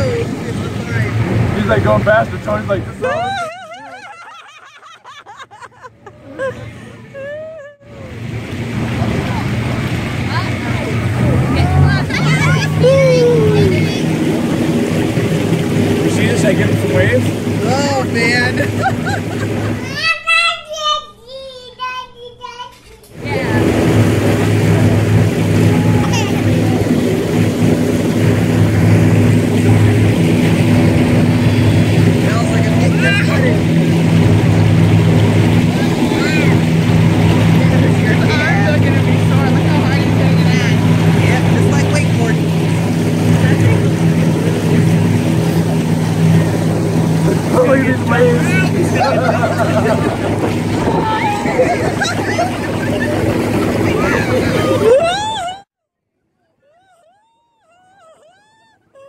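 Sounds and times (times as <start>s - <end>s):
outboard motor running: 0.0s - 20.2s, 23.1s - 55.7s
people laughing: 2.7s - 8.0s, 11.5s - 14.2s, 17.8s - 20.0s, 47.4s - 55.7s, 56.7s - 59.0s.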